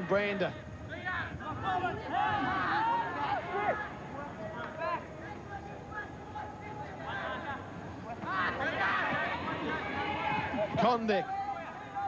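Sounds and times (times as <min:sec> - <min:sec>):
steady background noise: 0:00.0 - 0:12.0
raised voices shouting: 0:01.4 - 0:04.4, 0:06.0 - 0:12.0.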